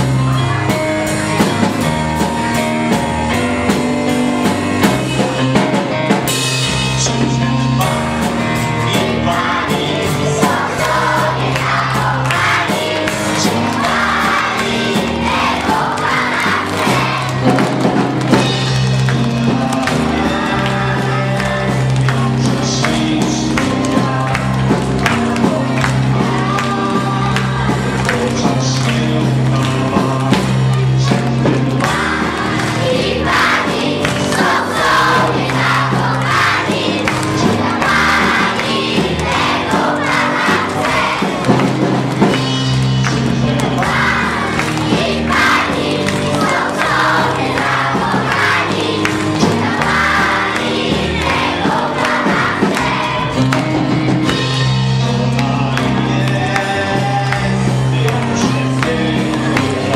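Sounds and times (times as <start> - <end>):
children singing along: 0.0 - 59.9
live band playing pop song: 0.0 - 59.9.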